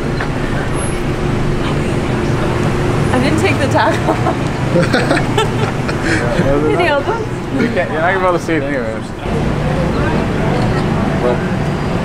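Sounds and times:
road traffic engine hum: 0:00.0 - 0:12.0.

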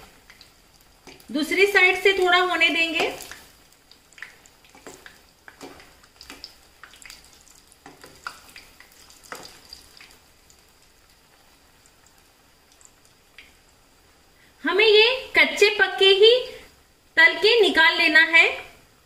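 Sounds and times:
fritters sizzling in hot oil: 0:00.0 - 0:14.6.

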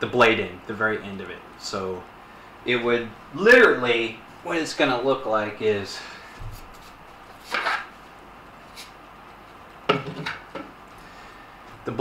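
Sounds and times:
sword scraping: 0:07.4 - 0:07.9.

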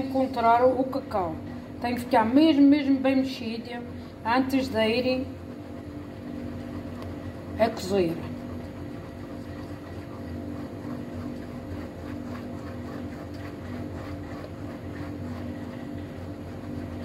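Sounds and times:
steady mechanical hum: 0:00.0 - 0:17.0.

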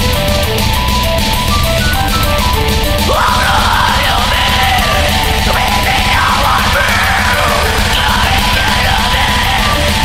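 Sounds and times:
dense drumming: 0:00.0 - 0:10.0
screamed vocal: 0:03.1 - 0:10.0.

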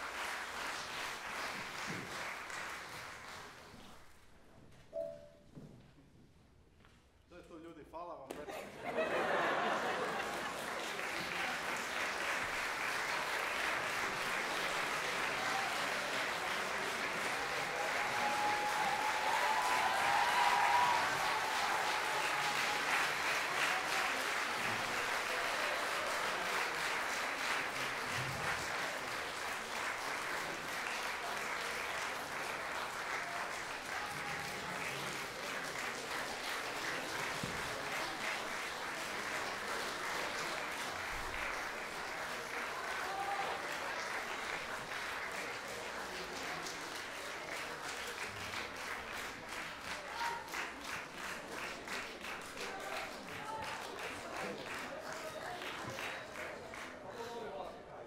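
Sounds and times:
large audience applauding: 0:00.0 - 0:04.2, 0:08.7 - 0:57.7.

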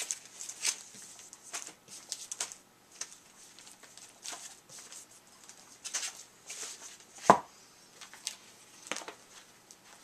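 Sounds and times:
plastic crinkles: 0:00.0 - 0:07.1, 0:08.0 - 0:10.0.

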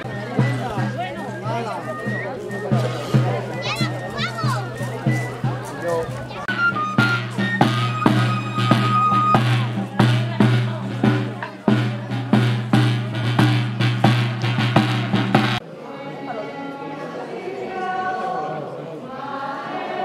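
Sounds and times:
small drum beating steadily: 0:00.0 - 0:15.6.

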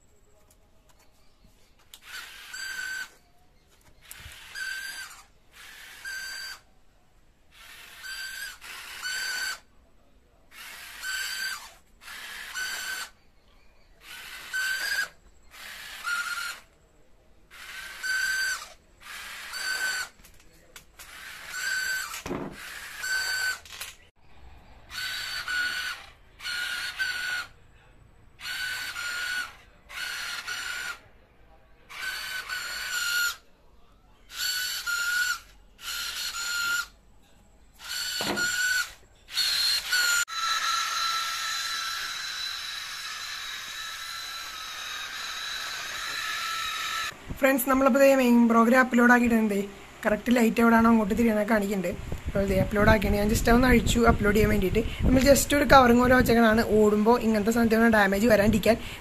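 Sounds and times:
small gear motors whining: 0:01.9 - 0:06.7, 0:07.5 - 0:09.7, 0:10.5 - 0:16.8, 0:17.5 - 0:20.3, 0:20.9 - 0:24.1, 0:24.8 - 0:27.6, 0:28.4 - 0:31.0, 0:31.9 - 0:33.4, 0:34.3 - 0:37.0, 0:37.8 - 0:47.2.

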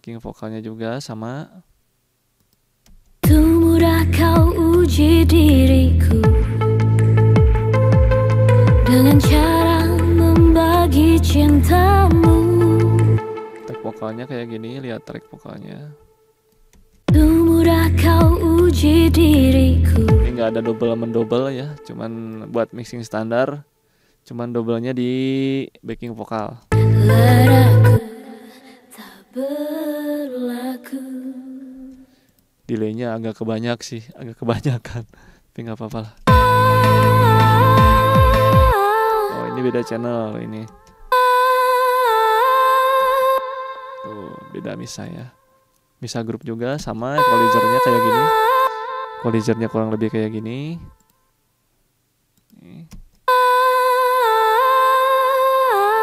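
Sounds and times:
woman singing long note with echo: 0:03.2 - 0:06.6, 0:08.7 - 0:14.8, 0:17.1 - 0:22.6, 0:26.7 - 0:32.1, 0:36.3 - 0:44.8, 0:47.2 - 0:50.3, 0:53.3 - 0:56.0
woman singing a long note: 0:08.8 - 0:13.8, 0:26.8 - 0:32.0, 0:36.3 - 0:40.1, 0:47.2 - 0:49.6.

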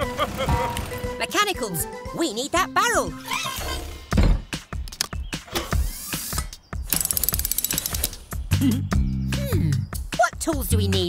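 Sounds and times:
toolbox heavy thump: 0:04.1 - 0:04.6
fast ratcheting clicks: 0:06.9 - 0:08.2.

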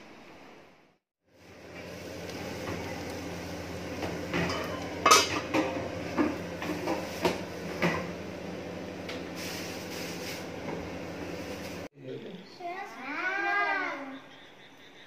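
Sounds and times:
metal pans clinking: 0:04.3 - 0:08.1.

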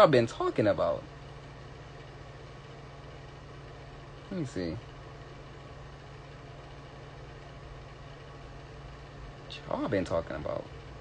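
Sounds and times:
low hum with hiss: 0:00.0 - 0:11.0.

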